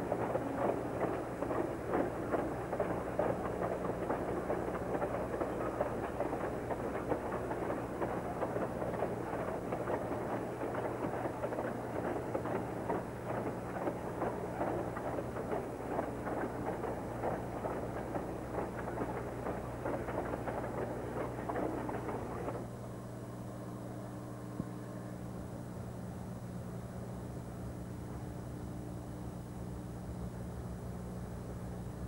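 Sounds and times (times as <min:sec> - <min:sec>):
freight train rumbling clatter: 0:00.0 - 0:22.6
steady low hum: 0:00.0 - 0:32.0.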